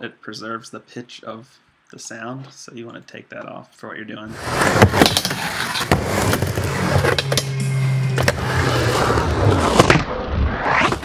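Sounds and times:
skateboard rolling on ramp: 4.3 - 11.0.

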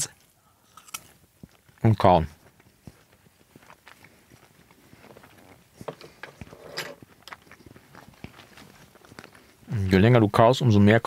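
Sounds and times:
quiet close-up chewing: 2.9 - 9.7.

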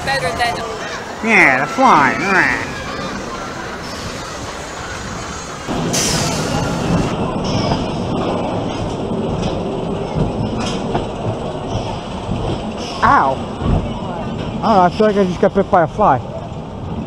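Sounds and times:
park background noise: 0.0 - 17.0
roller coaster rattling on track: 0.0 - 17.0.

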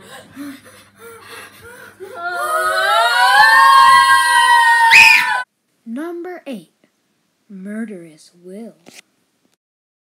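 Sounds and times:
child screaming: 2.2 - 5.5.

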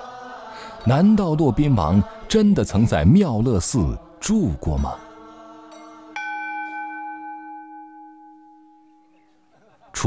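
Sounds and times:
soft sustained tone: 4.0 - 9.6
bell ringing: 4.6 - 9.5.

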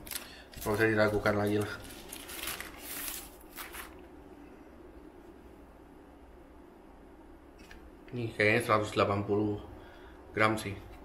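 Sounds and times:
paper sleeve rustling: 0.0 - 4.2.

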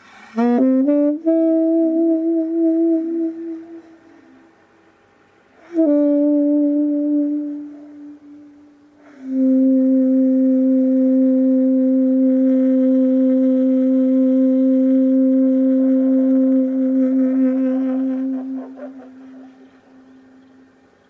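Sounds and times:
saxophone long note: 0.1 - 20.7.

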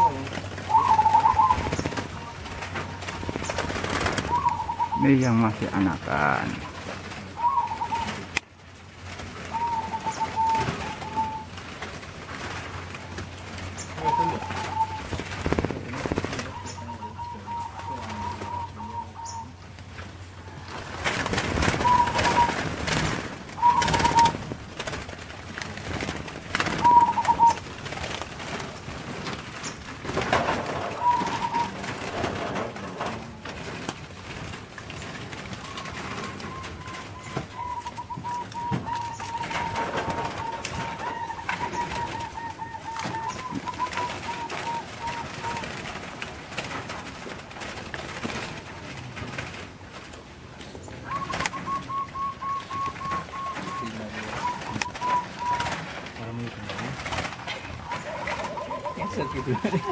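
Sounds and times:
doves cooing: 0.0 - 59.9.

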